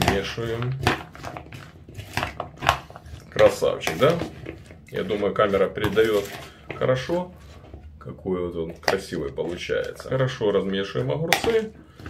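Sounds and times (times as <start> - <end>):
spoon stirring vegetables in bowl: 0.0 - 8.0, 8.6 - 12.0.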